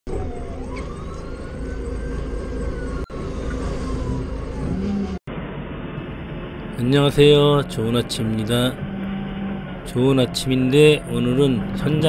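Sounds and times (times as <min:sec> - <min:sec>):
rising and falling whine: 0:00.1 - 0:12.0.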